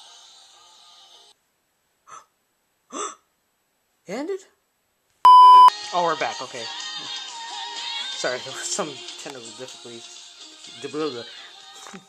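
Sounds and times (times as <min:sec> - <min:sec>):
wordless vocal sounds: 0:05.8 - 0:12.0.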